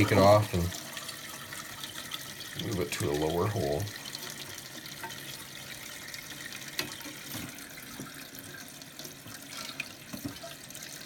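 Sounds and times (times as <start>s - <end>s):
water hissing into toilet tank: 0.0s - 11.0s.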